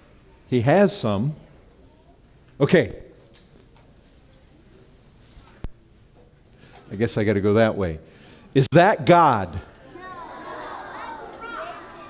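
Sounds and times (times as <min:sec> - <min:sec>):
children calling out: 0:09.7 - 0:12.0.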